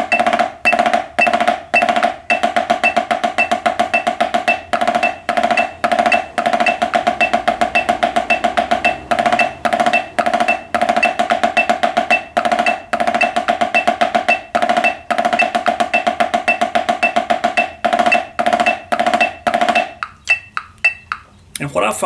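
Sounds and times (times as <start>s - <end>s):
drumsticks playing rolls on drum: 0.0s - 21.2s.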